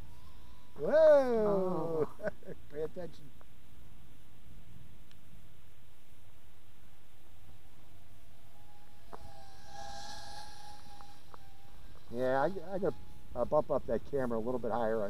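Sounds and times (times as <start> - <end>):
quadcopter motors whining: 0.0 - 3.3, 5.9 - 15.0.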